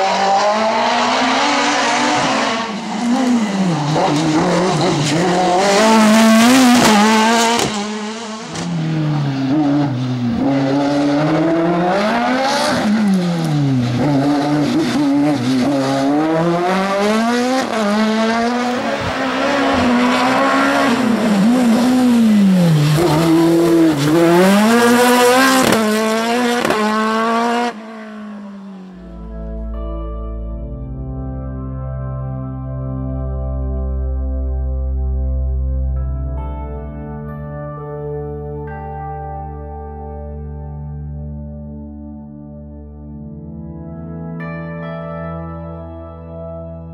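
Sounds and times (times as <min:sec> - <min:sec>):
race car engine revving: 0:00.0 - 0:29.3.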